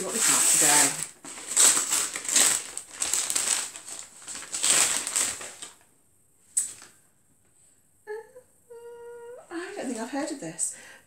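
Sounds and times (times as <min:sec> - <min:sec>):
paper bag rustling and crumpling: 0:00.0 - 0:05.8.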